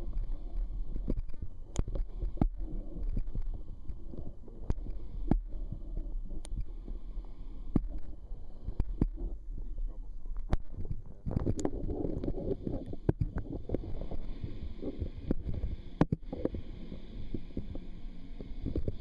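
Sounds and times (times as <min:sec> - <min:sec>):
muffled underwater rumble: 0:00.0 - 0:19.0.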